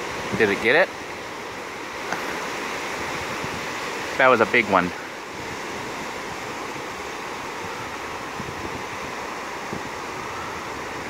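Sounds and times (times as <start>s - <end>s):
ocean surf washing onto beach: 0.0s - 11.0s
wind buffeting microphone: 0.0s - 11.0s.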